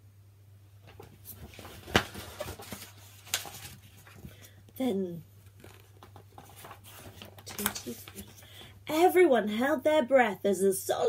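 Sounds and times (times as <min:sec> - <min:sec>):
book page turning: 0:00.8 - 0:04.6, 0:05.4 - 0:08.6.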